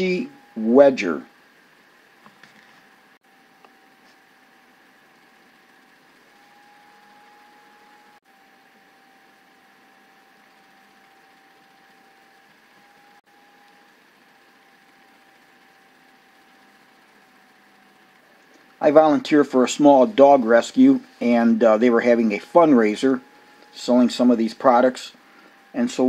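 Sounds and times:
low hiss: 0.0s - 26.0s
thin high hum: 0.0s - 26.0s.

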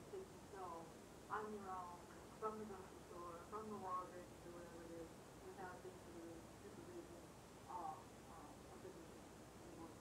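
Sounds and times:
tape hiss: 0.0s - 10.0s.

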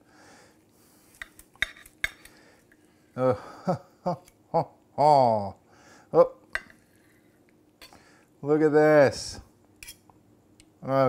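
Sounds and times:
knife and fork clinking on plate: 9.8s - 10.1s.

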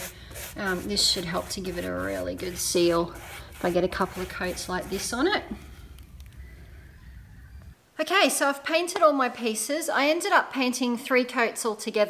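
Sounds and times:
faint low rumble: 4.7s - 7.8s.

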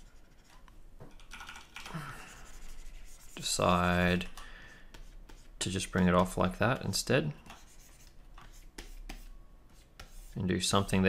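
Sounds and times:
stylus scratching on tablet: 0.0s - 0.6s, 2.3s - 4.3s, 4.9s - 11.0s.

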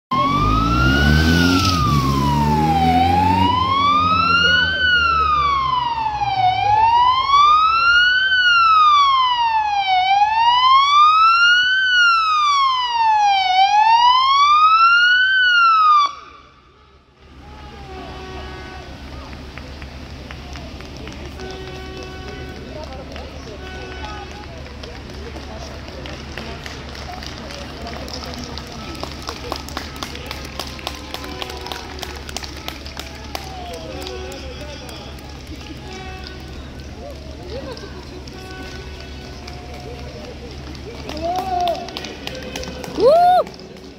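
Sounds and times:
police siren wailing: 0.1s - 16.6s
street background: 0.1s - 43.9s
running footsteps patter: 19.0s - 43.9s.

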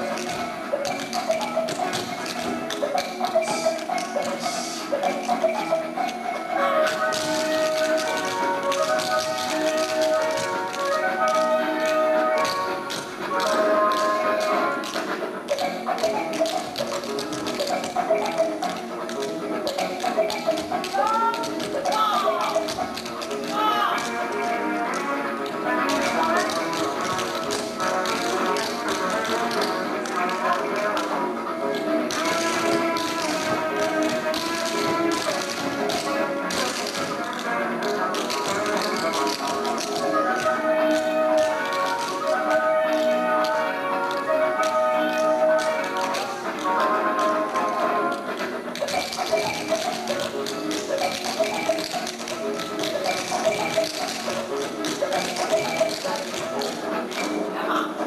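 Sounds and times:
dance music with vocals: 0.0s - 37.3s
tap shoes on wooden stage: 0.0s - 57.5s.

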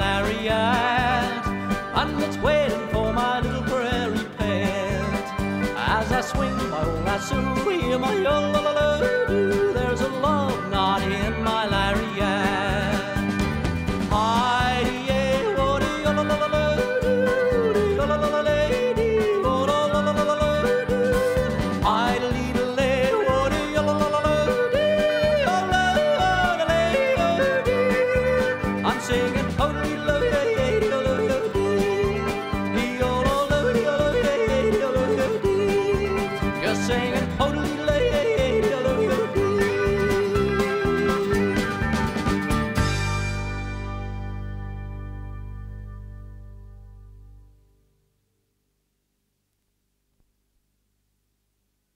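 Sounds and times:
country band playing: 0.0s - 46.8s.

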